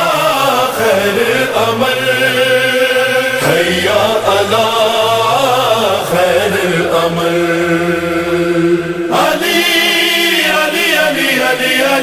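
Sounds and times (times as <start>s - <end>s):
voices chanting: 0.0s - 12.0s.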